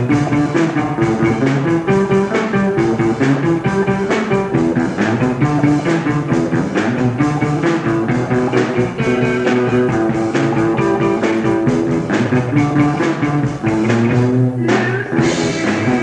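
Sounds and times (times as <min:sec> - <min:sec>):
drum kit beat: 0:00.0 - 0:16.0
electric guitars: 0:00.0 - 0:16.0.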